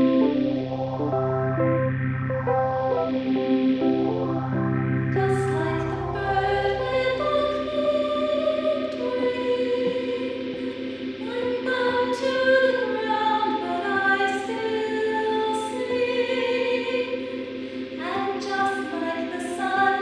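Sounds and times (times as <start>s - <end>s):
voices singing in close harmony: 5.2s - 20.0s.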